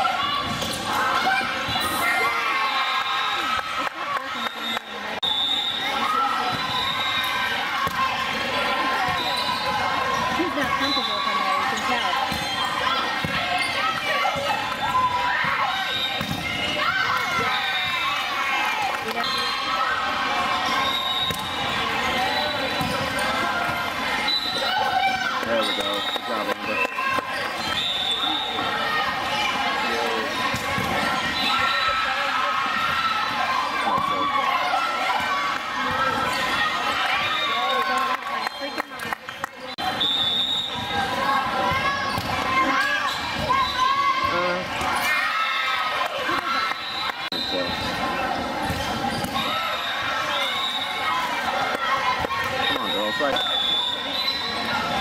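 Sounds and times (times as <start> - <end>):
volleyballs hit and bouncing: 0.0 - 2.0, 5.9 - 11.0, 11.6 - 19.5, 20.4 - 39.8, 40.8 - 43.6, 45.9 - 49.8.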